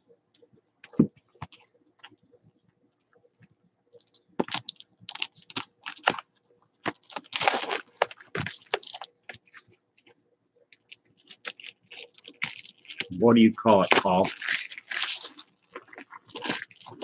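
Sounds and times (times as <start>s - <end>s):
packaging crinkling and tearing: 4.0s - 9.6s, 10.8s - 17.0s.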